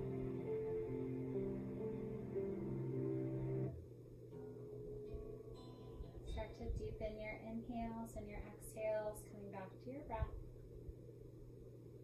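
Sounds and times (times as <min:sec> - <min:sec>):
sustained note: 0:00.0 - 0:03.7
soft background music chords: 0:00.0 - 0:08.0.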